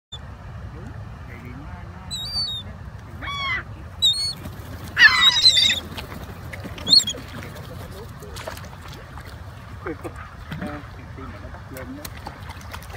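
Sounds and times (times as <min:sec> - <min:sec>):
gulls calling: 0:02.0 - 0:11.7.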